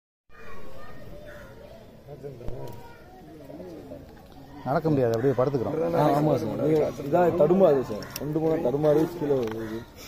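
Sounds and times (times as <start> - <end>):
faint voices talking: 0.3 - 10.0.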